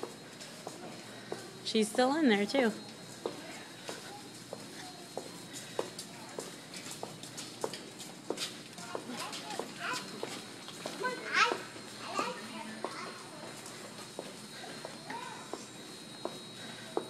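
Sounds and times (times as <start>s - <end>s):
faint voices: 0.0s - 17.0s
footsteps on concrete: 0.0s - 17.0s.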